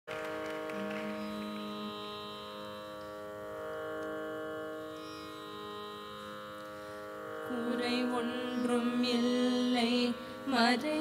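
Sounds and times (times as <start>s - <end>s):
tanpura drone: 0.1s - 11.0s
held melodic note: 0.3s - 6.9s.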